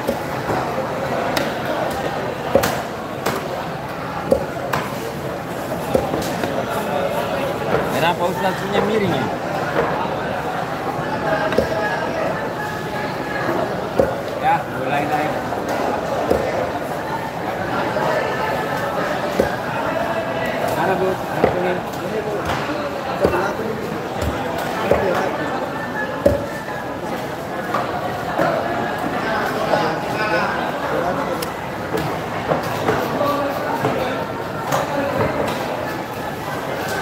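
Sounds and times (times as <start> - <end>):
indistinct market voices: 0.0 - 37.0
many people talking: 0.0 - 37.0.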